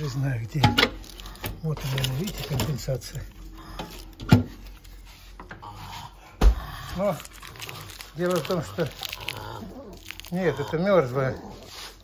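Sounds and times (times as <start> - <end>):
plastic bag rustling: 0.0 - 5.4, 7.0 - 9.3.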